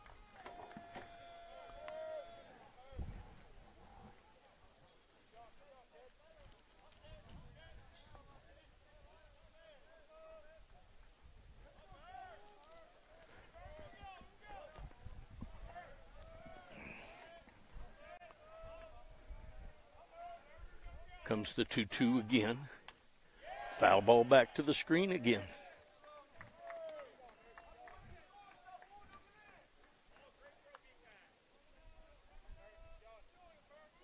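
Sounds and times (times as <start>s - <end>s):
distant players calling: 19.8s - 27.8s.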